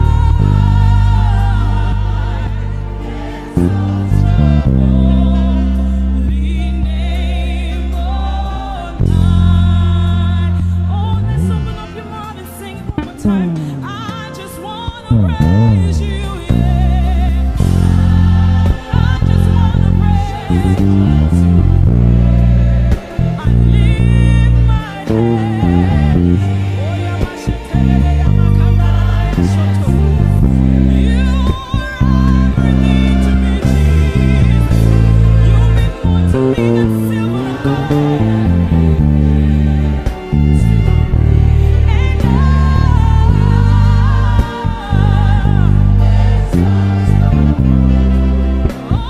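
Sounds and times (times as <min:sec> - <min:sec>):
electric bass playing chords: 0:00.0 - 0:49.0
recorded gospel song with singing: 0:00.0 - 0:49.0.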